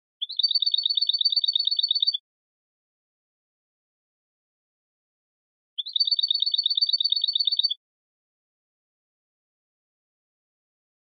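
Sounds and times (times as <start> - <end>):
bird singing rapid trill: 0.2 - 2.2, 5.8 - 7.8.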